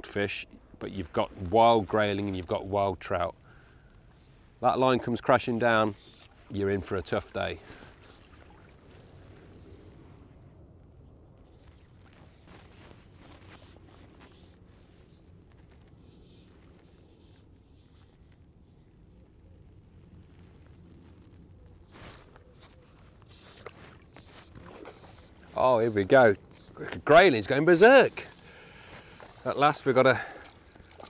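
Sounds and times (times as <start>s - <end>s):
wading in a river: 0.5s - 31.0s
rustles and scrapes of movement: 4.1s - 31.0s.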